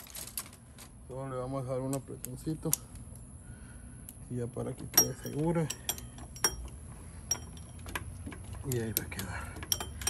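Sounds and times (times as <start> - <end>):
wrench clinking against metal: 4.8 - 10.0.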